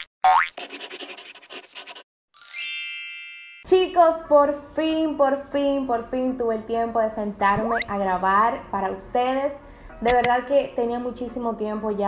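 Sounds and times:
pen scratching on paper: 0.6 - 2.0
rising boing: 7.5 - 7.9.

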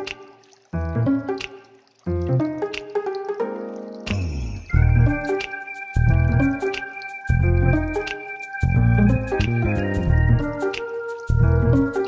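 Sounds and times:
instrumental background music: 0.0 - 12.0
deep bass notes: 6.0 - 6.6, 7.3 - 8.0, 8.6 - 10.6, 11.3 - 12.0.

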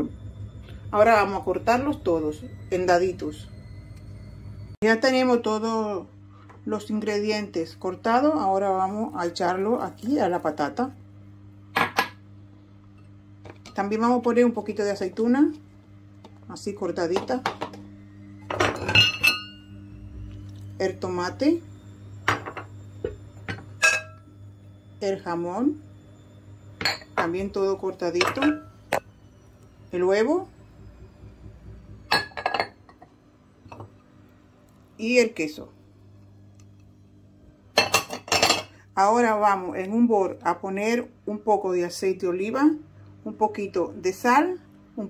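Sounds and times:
faint low hum: 0.0 - 45.0
kitchenware clinking on bowl: 18.5 - 19.6, 23.5 - 24.2, 37.8 - 38.8.

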